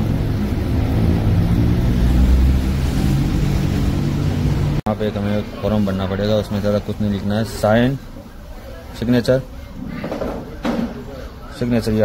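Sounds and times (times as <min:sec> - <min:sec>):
vehicle engines passing: 0:00.0 - 0:08.9.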